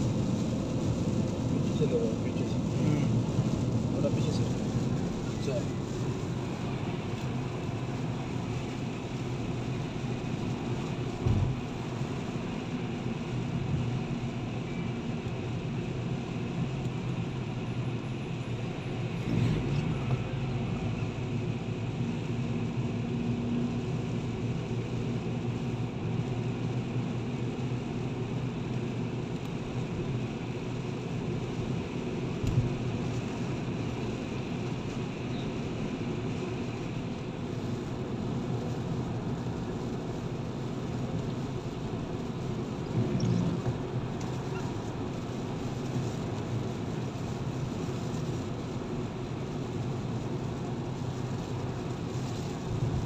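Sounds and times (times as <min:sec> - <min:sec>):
brief low thump: 0:11.2 - 0:11.6.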